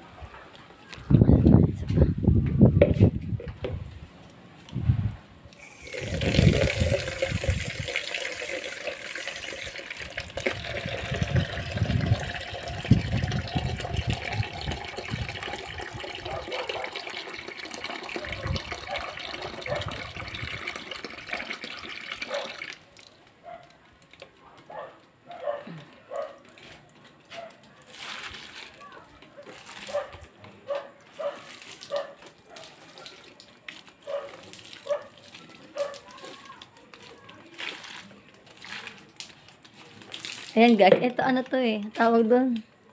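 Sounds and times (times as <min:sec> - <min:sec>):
water splashing onto plants: 0:05.6 - 0:24.2, 0:25.8 - 0:30.4, 0:31.0 - 0:42.6.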